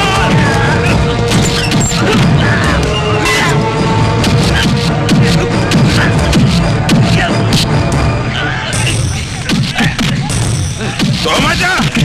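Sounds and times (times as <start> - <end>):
loud background music: 0.0 - 12.0.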